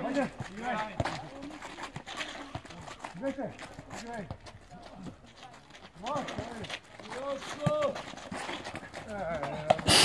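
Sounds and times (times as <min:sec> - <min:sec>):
footsteps on court: 0:00.0 - 0:10.0.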